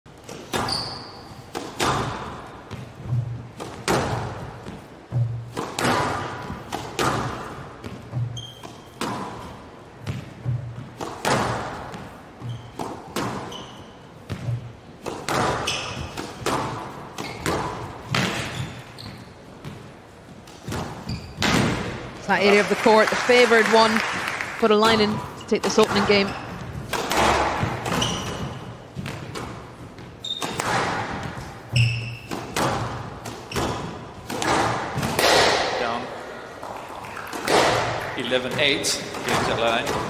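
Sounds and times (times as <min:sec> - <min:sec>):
shoes squeaking on court floor: 0:00.1 - 0:23.9, 0:24.7 - 0:35.1
ball hitting walls echoing: 0:00.1 - 0:40.0
racket striking squash ball: 0:00.2 - 0:22.6, 0:24.1 - 0:40.0.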